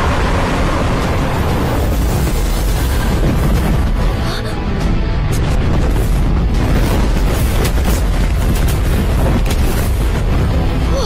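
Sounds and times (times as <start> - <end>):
booming explosions: 0.0 - 11.0
continuous low rumble: 0.0 - 11.0
film music: 0.0 - 11.0.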